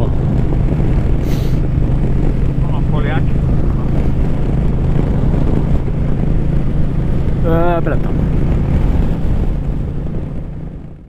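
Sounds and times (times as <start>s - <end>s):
motorcycle engine running: 0.0s - 11.0s
wind buffeting microphone: 0.0s - 11.0s.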